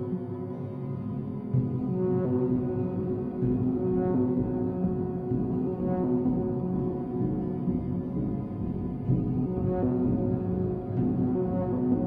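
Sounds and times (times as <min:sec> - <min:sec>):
low held synth notes: 0:00.0 - 0:12.0.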